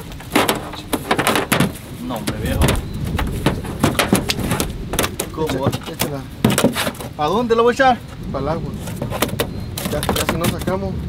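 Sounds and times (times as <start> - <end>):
net and weights knocking on deck: 0.3 - 7.1.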